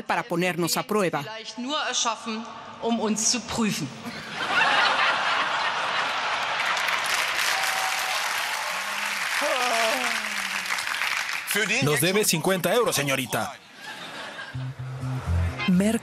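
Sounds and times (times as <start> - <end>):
audience laughing: 4.1 - 7.3, 9.0 - 11.0, 13.4 - 15.4
audience applauding: 5.8 - 12.8.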